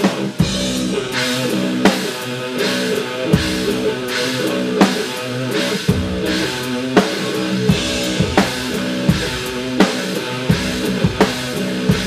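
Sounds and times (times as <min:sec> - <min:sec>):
backing track with guitar: 0:00.0 - 0:12.0
drum kit playing: 0:00.0 - 0:12.0.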